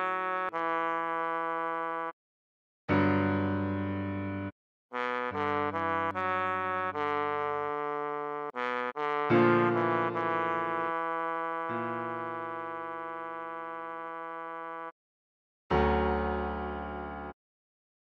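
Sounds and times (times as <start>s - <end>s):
trombone melody: 0.0s - 2.2s, 5.0s - 14.9s.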